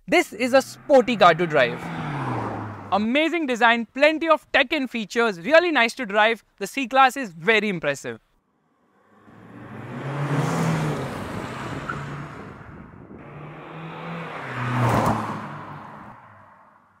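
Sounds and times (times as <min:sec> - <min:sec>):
car driving past: 0:00.6 - 0:03.0, 0:08.6 - 0:17.0.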